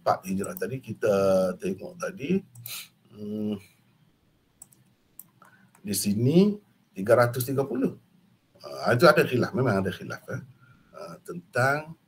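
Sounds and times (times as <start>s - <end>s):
man talking: 0.0s - 3.7s, 5.8s - 8.0s, 8.6s - 12.0s
computer mouse clicks: 0.4s - 0.7s, 2.5s - 2.8s, 4.6s - 5.9s.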